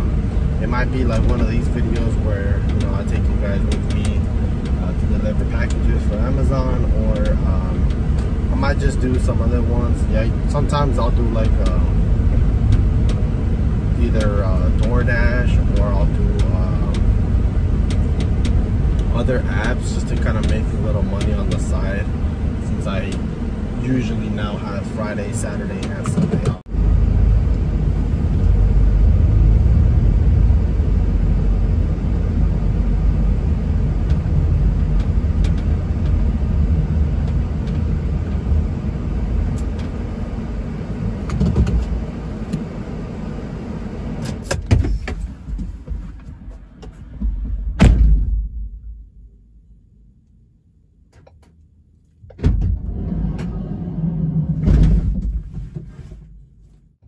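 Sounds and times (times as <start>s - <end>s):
van road and engine rumble: 0.0s - 57.0s
sharp clicks and knocks: 1.0s - 8.3s, 11.0s - 13.3s, 14.0s - 17.2s, 17.8s - 22.1s, 25.6s - 26.7s, 34.0s - 36.3s, 41.3s - 42.7s.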